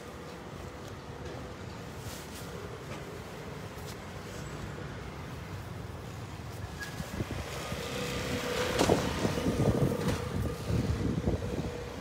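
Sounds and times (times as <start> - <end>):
vehicle engine and tyres passing: 0.4 - 12.0
wind buffeting microphone: 7.0 - 12.0.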